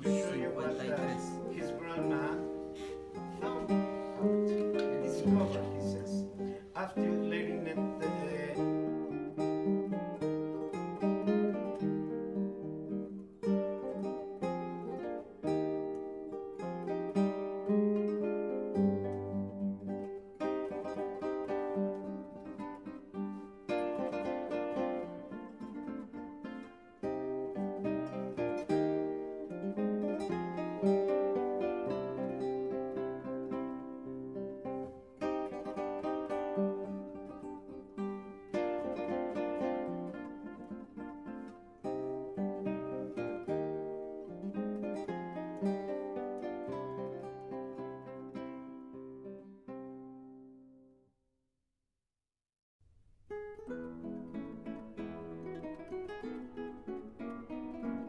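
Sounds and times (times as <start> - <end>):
acoustic guitar melody: 0.0 - 51.0, 53.2 - 58.0.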